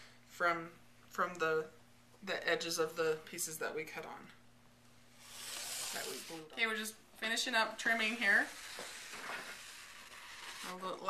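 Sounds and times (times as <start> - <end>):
rotary cutter slicing fabric: 5.2 - 6.4.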